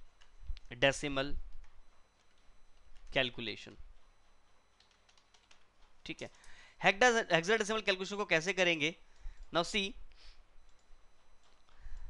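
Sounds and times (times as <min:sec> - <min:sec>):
faint keyboard typing: 0:00.0 - 0:00.8, 0:01.4 - 0:06.8, 0:07.5 - 0:09.9, 0:10.6 - 0:12.0.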